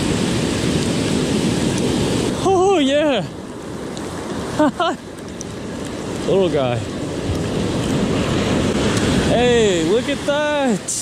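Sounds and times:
wind on microphone: 0.0 - 4.6, 5.4 - 11.0
surf washing up beach: 0.0 - 11.0
man exclaiming: 2.4 - 3.3.

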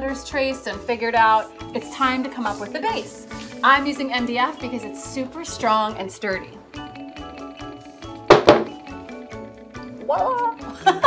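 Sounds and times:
background music with steady beat: 0.0 - 11.0
board knocking on workbench: 8.3 - 8.8.

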